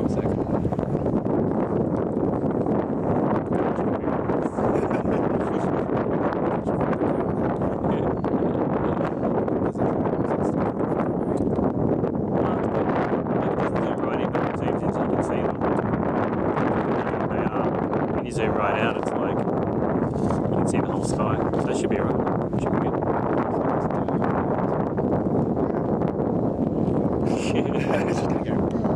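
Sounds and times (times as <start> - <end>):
wind buffeting microphone: 0.0 - 28.9.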